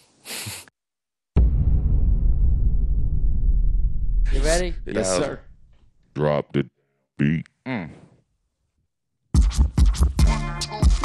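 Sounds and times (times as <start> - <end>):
hip-hop beat with kick drum: 9.3 - 11.0
turntable scratching: 9.4 - 11.0.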